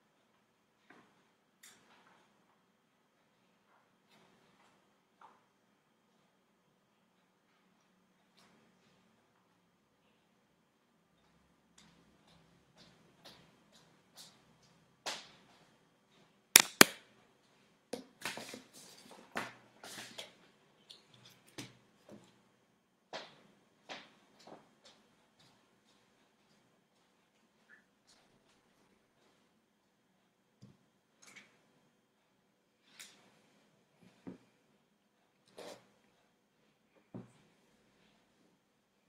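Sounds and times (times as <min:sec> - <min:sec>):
sharp clicks: 0:16.6 - 0:16.9.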